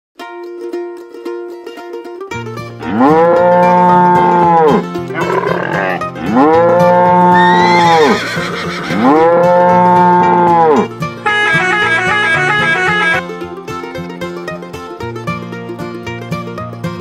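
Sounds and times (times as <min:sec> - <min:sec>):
plucked-string tune: 0:00.2 - 0:17.0
cow mooing: 0:02.8 - 0:13.2.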